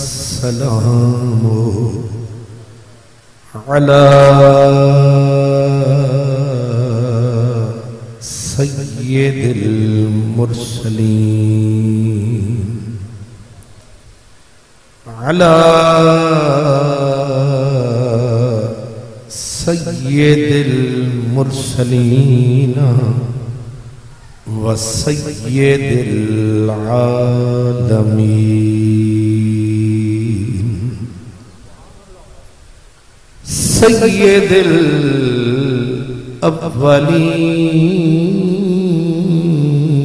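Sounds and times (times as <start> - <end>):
man chanting: 0.0 - 13.6, 15.0 - 32.7, 33.4 - 40.0.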